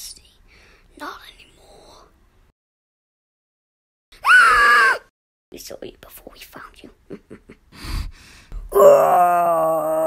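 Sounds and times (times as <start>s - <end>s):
person wailing: 8.7s - 10.0s.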